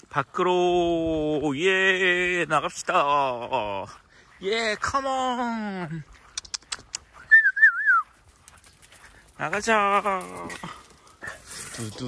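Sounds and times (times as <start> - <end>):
person whistling warbling call: 7.2 - 8.1.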